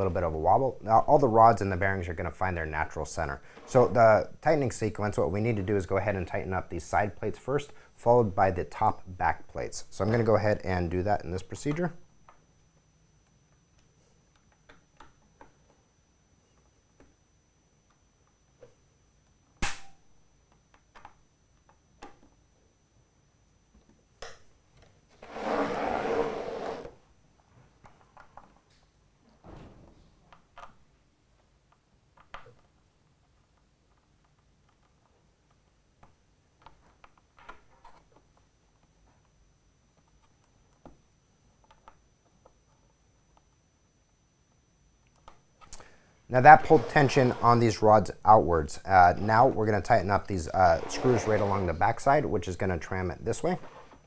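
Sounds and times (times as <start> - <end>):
sharp click: 19.6 - 20.0.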